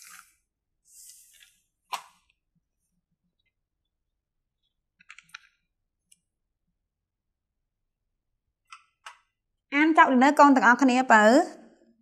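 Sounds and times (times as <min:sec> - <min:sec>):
small clicks from handling items: 0:04.6 - 0:06.3.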